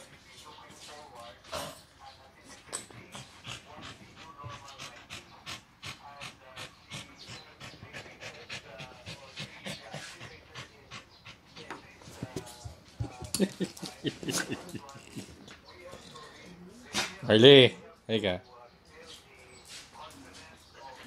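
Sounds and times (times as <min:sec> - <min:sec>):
small dog panting: 0:03.0 - 0:17.3.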